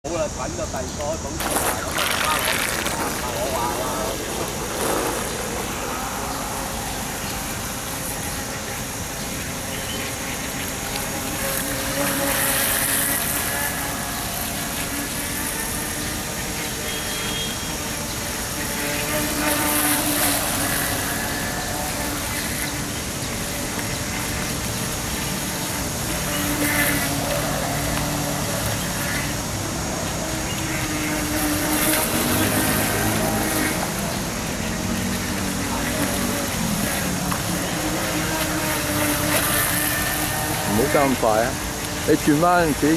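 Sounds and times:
model boat motor hum: 0.1 - 42.9.

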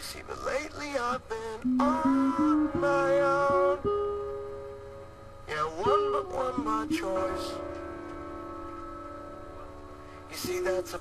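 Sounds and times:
electric guitar chord ringing: 1.6 - 11.0.

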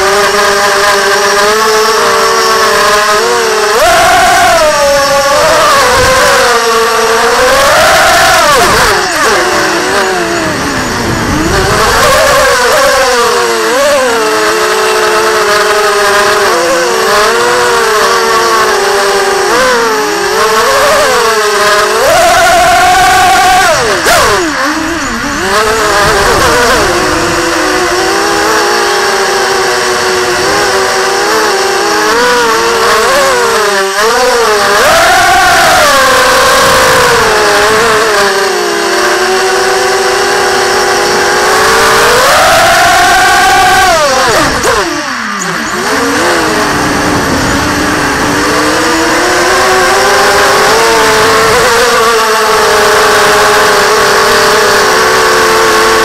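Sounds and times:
quadcopter motors whining: 0.0 - 56.0.

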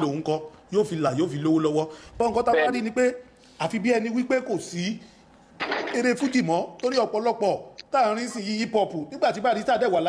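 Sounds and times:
person talking: 2.3 - 3.0.

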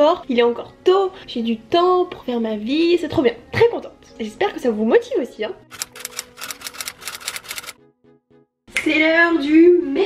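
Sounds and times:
typewriter key clacks: 5.7 - 7.8.

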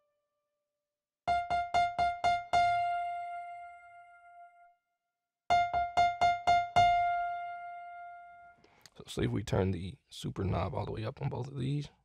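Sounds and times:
synthesizer piano note: 1.3 - 4.7, 5.5 - 8.6.

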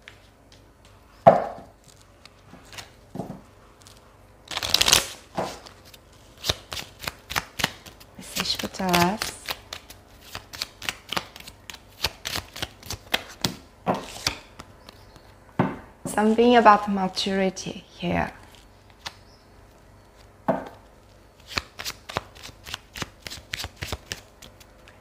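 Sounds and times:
cards riffling: 3.8 - 15.2, 21.4 - 25.0.

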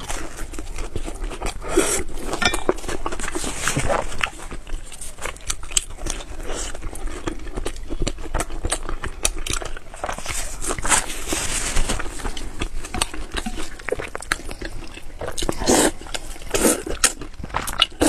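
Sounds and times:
chewing bread: 0.0 - 18.0.

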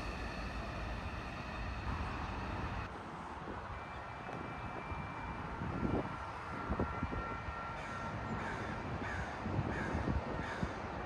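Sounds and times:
wind noise on microphone: 4.4 - 7.8, 8.4 - 11.0.

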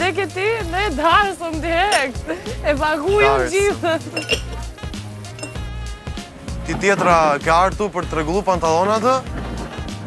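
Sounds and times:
background music with deep bass: 0.0 - 10.0
glasses clinking: 1.8 - 2.4, 3.2 - 5.8.

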